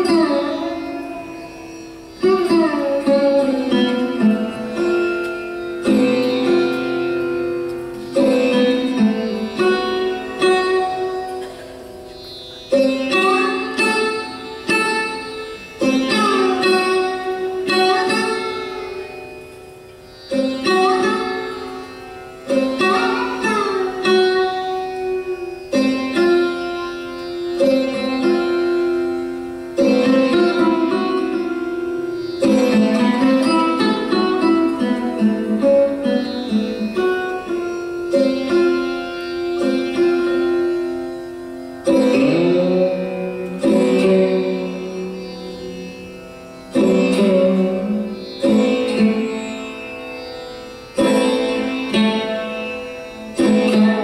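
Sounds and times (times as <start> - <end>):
plucked sarod notes: 0.0 - 54.0.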